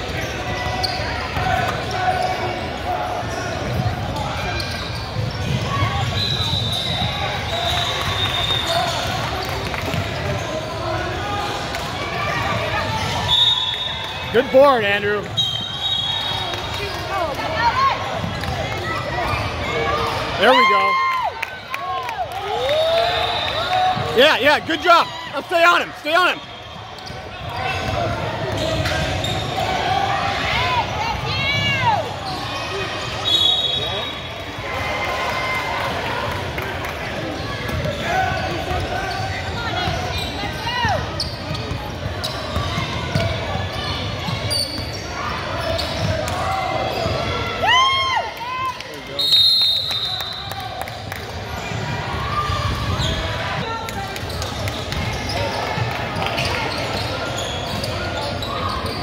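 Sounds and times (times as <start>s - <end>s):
sneakers squeaking: 0.0s - 20.9s, 22.7s - 34.6s, 37.1s - 47.6s, 49.2s - 59.0s
crowd and player voices echoing: 0.0s - 59.0s
basketball bouncing on court: 40.8s - 43.6s
short high whistle blasts: 49.2s - 50.4s.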